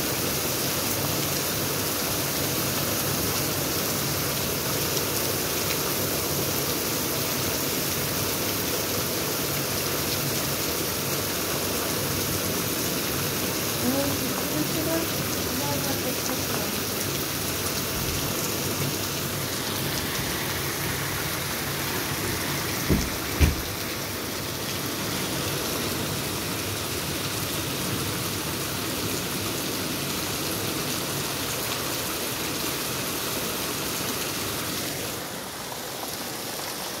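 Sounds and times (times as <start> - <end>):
heavy rain on pavement: 0.0 - 37.0
dull thumps: 22.8 - 23.7.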